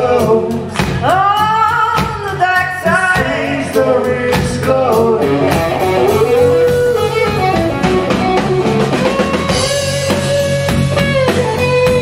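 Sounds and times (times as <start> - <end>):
person singing: 0.0 - 7.7
drum kit: 0.0 - 12.0
electric bass: 0.0 - 12.0
electric guitar: 0.0 - 12.0.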